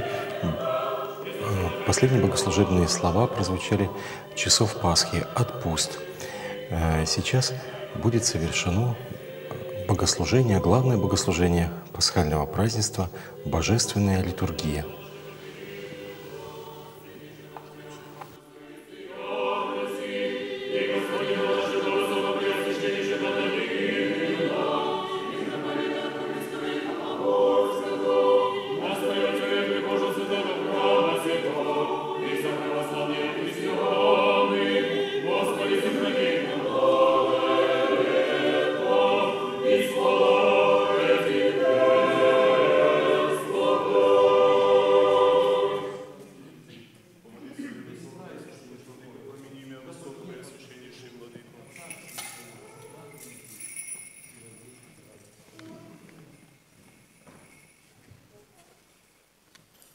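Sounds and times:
choir singing a hymn: 0:00.0 - 0:46.6.

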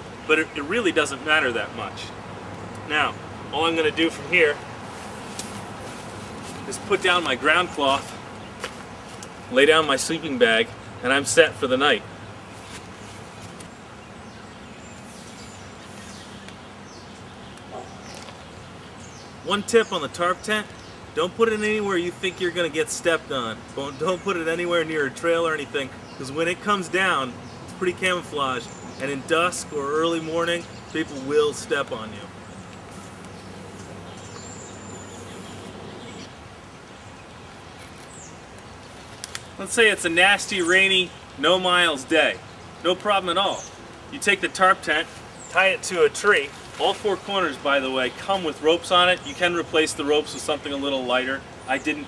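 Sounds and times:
outdoor background hiss: 0:00.0 - 0:52.0
high thin bird chirp: 0:12.5 - 0:19.3.

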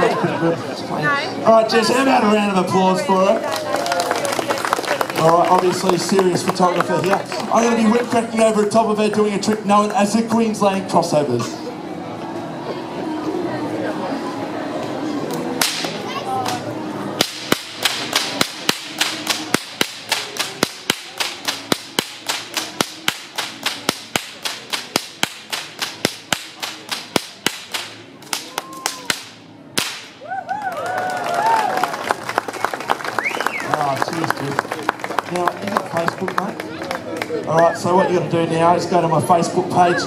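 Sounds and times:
whips cracking: 0:15.6 - 0:16.6, 0:17.2 - 0:30.2
crowd cheering and whooping: 0:28.5 - 0:29.1, 0:30.2 - 0:33.8.

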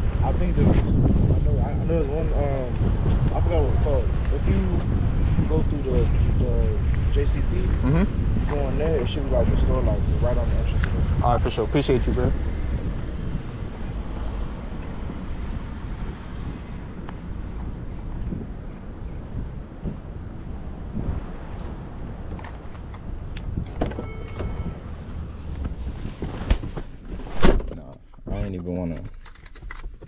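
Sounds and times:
distant traffic: 0:00.0 - 0:30.0
wind: 0:00.0 - 0:30.0
car door opening: 0:23.5 - 0:24.8.

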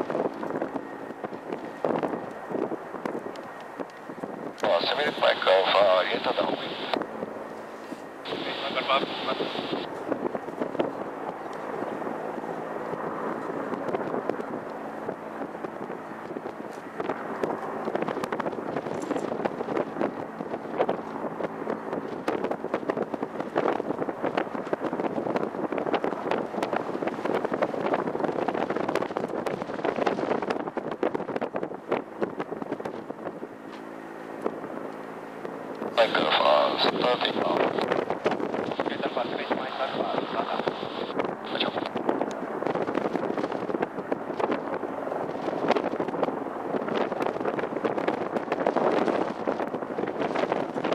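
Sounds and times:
distant jet engines rushing: 0:00.0 - 0:50.9.

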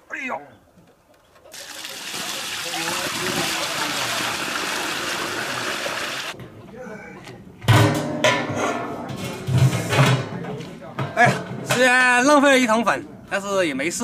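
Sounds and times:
water pouring and splashing on ground: 0:01.5 - 0:06.4.

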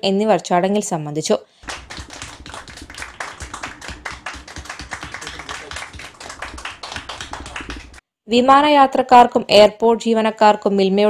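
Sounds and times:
people clapping: 0:01.6 - 0:08.0.

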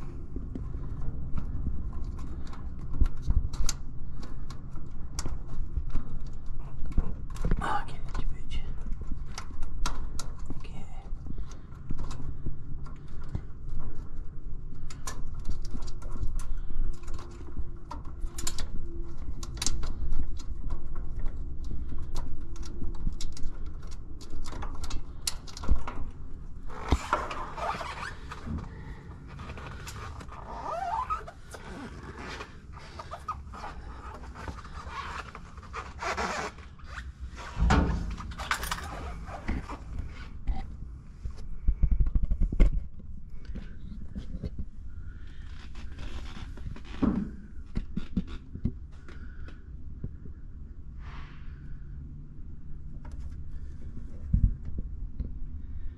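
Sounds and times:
scraping and handling noise: 0:00.0 - 0:49.4
steady low rumble: 0:00.0 - 0:55.9
loud thump: 0:37.6 - 0:38.6.

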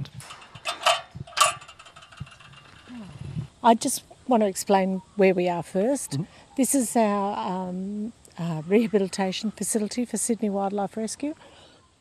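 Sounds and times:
mechanical rattles: 0:00.0 - 0:03.0.

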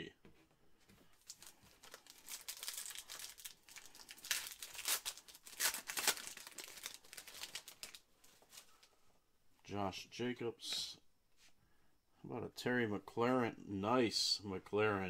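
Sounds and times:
foil wrapper tearing and crinkling: 0:01.3 - 0:08.0.

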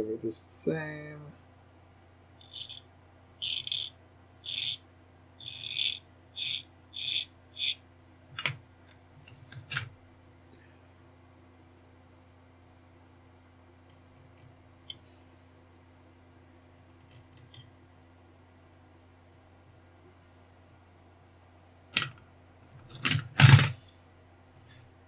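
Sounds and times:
hand tool scraping plastic: 0:24.6 - 0:24.8.

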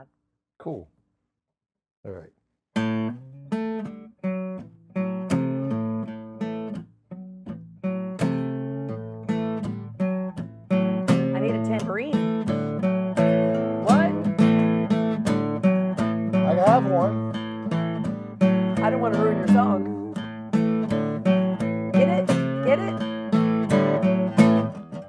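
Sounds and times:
acoustic guitar strumming: 0:02.8 - 0:25.0.

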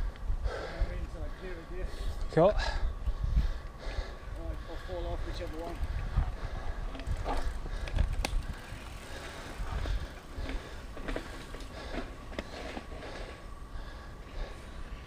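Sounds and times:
bike tyre rumble on dirt: 0:03.1 - 0:15.0
bike clicks and knocks: 0:06.9 - 0:13.4.

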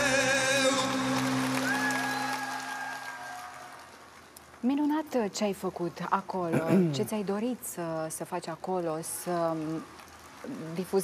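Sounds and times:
person singing vibrato: 0:00.0 - 0:02.3.

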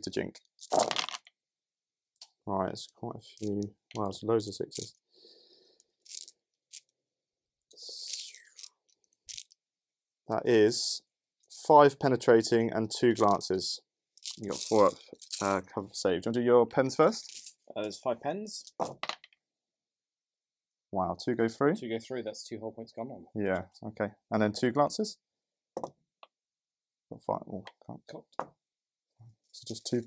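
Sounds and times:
person speaking: 0:02.2 - 0:05.0, 0:07.7 - 0:08.7, 0:10.3 - 0:19.0
breathy whisper-like sound: 0:07.7 - 0:08.6.

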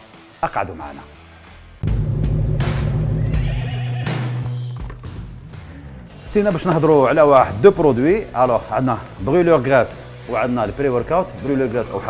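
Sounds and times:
deep low drone: 0:01.8 - 0:03.7
horse whinnying: 0:03.2 - 0:04.9.

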